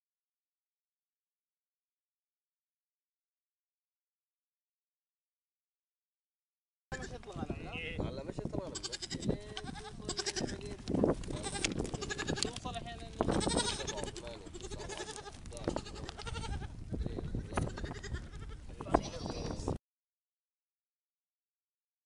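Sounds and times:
goats bleating: 6.9 - 7.7, 8.6 - 19.7.

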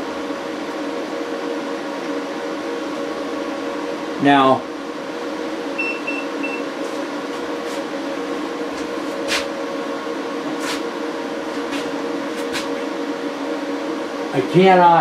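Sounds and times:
cooling fan noise: 0.0 - 15.0
inverter electrical hum: 0.0 - 15.0.

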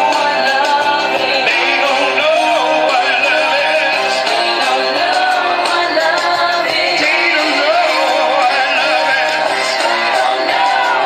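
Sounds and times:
man singing through microphone: 0.0 - 11.0
pop backing track: 0.0 - 11.0.

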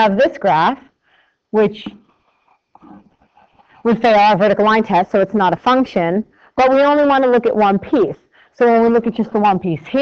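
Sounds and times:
person speaking: 1.6 - 7.9.

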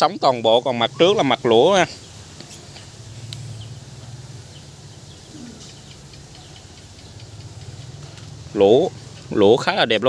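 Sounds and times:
faint bird chirps: 0.0 - 9.6.

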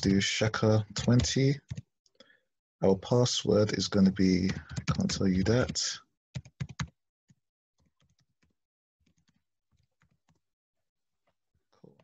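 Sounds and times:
computer keyboard typing: 4.4 - 7.0.

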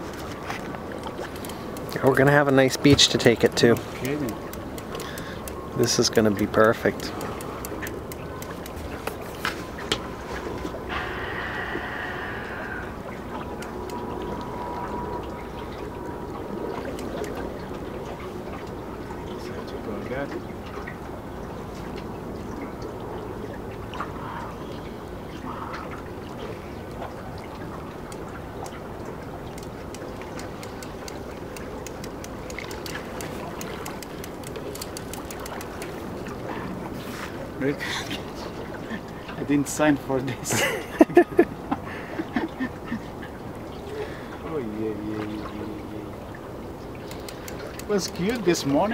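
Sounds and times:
river water: 0.0 - 48.9
light clicks: 16.8 - 17.4, 29.5 - 36.0, 47.0 - 48.8.

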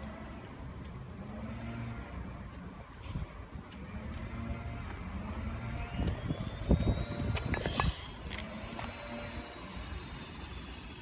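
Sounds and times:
low outdoor hum: 0.0 - 11.0
footsteps on pavement: 2.1 - 9.5.

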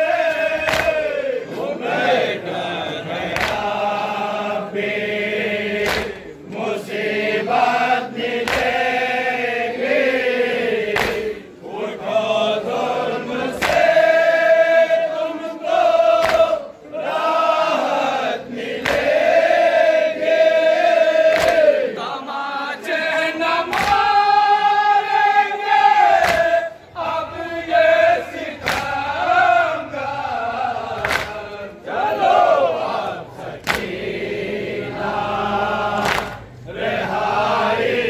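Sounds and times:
men chanting in unison: 0.0 - 38.0
hands slapping chests: 0.3 - 1.2, 3.3 - 3.8, 5.8 - 6.4, 8.4 - 8.9, 10.9 - 11.4, 13.5 - 14.0, 16.1 - 16.6, 18.8 - 19.2, 21.3 - 21.8, 23.7 - 24.2, 26.0 - 26.6, 28.6 - 29.1, 31.0 - 31.6, 33.6 - 34.0, 36.0 - 36.5.

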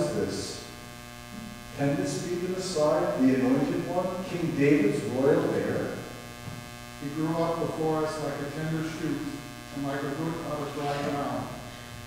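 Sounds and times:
man's voice in reverberant hall: 0.0 - 0.7, 1.7 - 6.2, 7.0 - 11.8
electrical hum: 0.0 - 12.0.

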